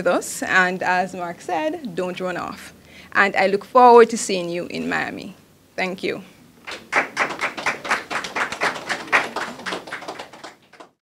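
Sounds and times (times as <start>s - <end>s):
small audience applauding: 6.6s - 11.0s.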